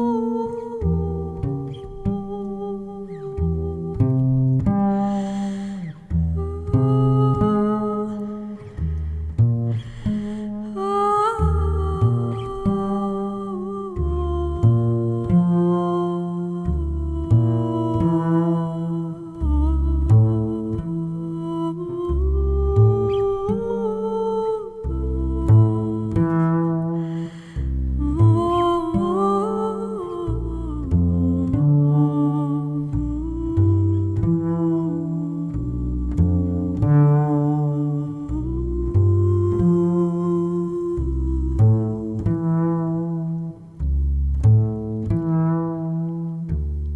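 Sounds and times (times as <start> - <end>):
woman singing wordless long note: 0.0 - 9.0, 9.9 - 43.7
woman humming: 0.0 - 43.7
double bass plucking: 0.0 - 46.9
short breath: 5.0 - 6.1, 8.6 - 10.6, 27.0 - 27.9.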